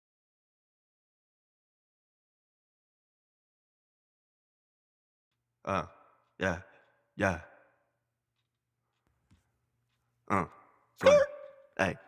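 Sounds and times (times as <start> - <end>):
man's uh ad-lib: 5.6 - 7.5, 10.3 - 12.0.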